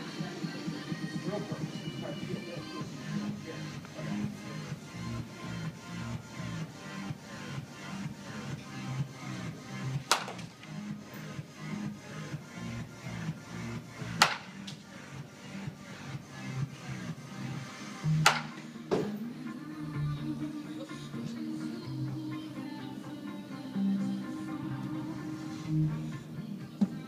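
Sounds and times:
background music with steady beat: 0.0 - 27.0
baseball bat hitting ball: 10.1 - 10.5, 14.2 - 14.6, 18.2 - 19.2.

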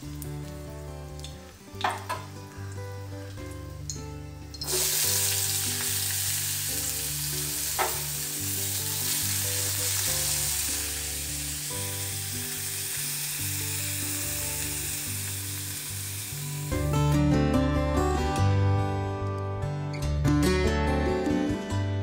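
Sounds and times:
vegetables sizzling in hot oil: 0.0 - 17.0
metal spatula knocking wok: 1.8 - 2.4.

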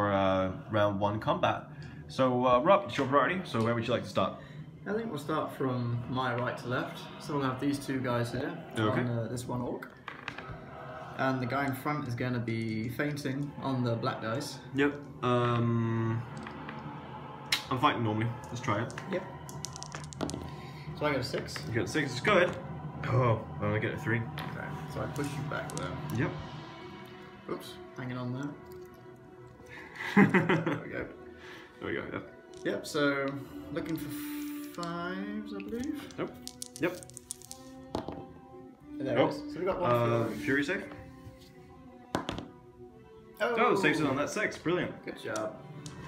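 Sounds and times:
faint background music: 0.0 - 46.0
dice clicking on cloth mat: 18.4 - 20.6, 25.1 - 26.2, 35.7 - 38.2, 42.1 - 42.5, 45.3 - 46.0.

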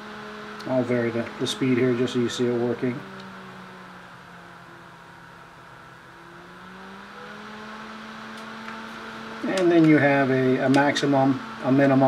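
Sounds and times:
small cooling fan whirring: 0.0 - 12.0.

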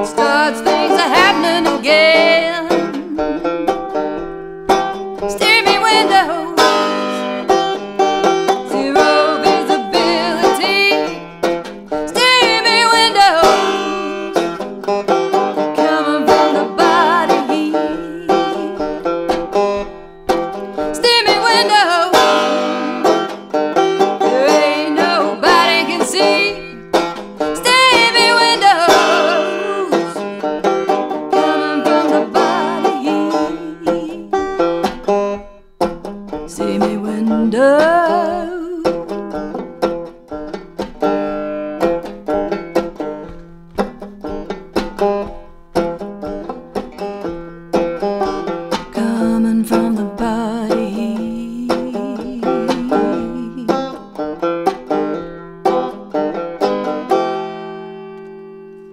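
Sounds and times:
banjo picking: 0.0 - 58.9
person talking: 49.0 - 53.8.

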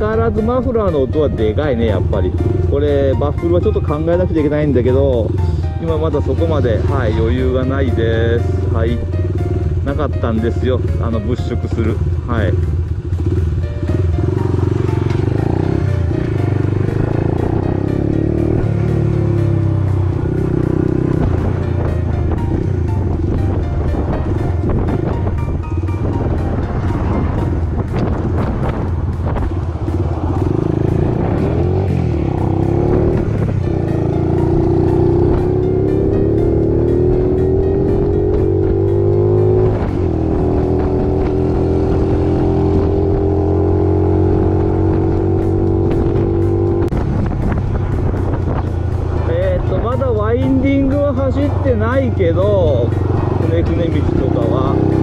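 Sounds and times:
motorbike engine accelerating: 0.0 - 55.0.

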